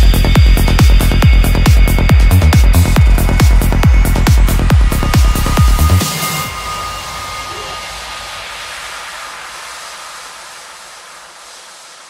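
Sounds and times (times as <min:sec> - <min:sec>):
electronic trance music: 0:00.0 - 0:12.0
faint synth tone: 0:02.9 - 0:09.4.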